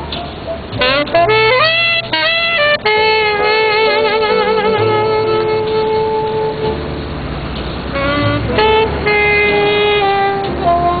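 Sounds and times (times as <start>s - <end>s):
street traffic rumble: 0.0s - 11.0s
saxophone jazz ballad: 0.8s - 7.1s, 7.9s - 11.0s.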